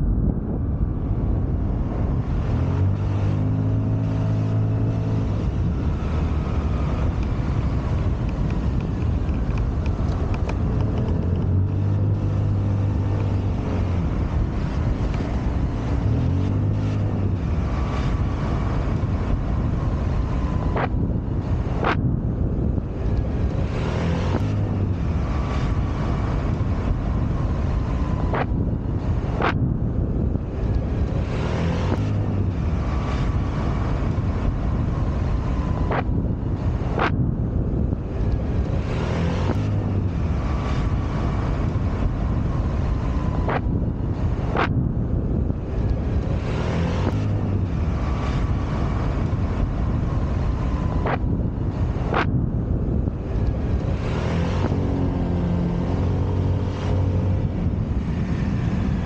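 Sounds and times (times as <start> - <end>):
wind noise on microphone: 0.0 - 59.0
sharp clicks: 8.2 - 11.5.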